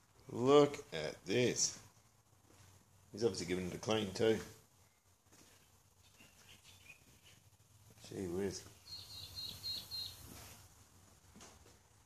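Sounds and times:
faint high bird chirps: 0:04.8 - 0:07.5, 0:08.6 - 0:10.6.

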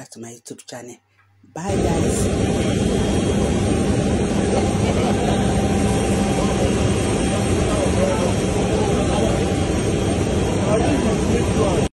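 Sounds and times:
people's voices: 0:01.6 - 0:02.5, 0:04.3 - 0:11.9
jet engine noise: 0:01.7 - 0:11.9.

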